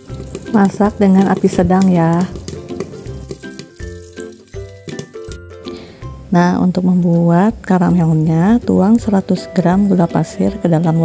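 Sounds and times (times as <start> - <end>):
popcorn popping and sizzling: 0.0 - 9.2
background music: 0.0 - 11.0.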